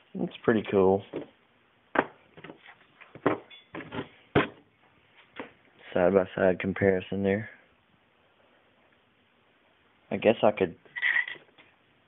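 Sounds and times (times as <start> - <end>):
objects knocking on hard surface: 2.0 - 4.6.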